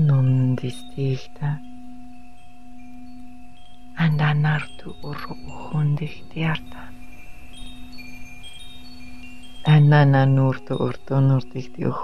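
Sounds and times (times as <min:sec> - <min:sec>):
low steady hum: 0:00.0 - 0:12.0
wind chimes ringing: 0:00.0 - 0:12.0.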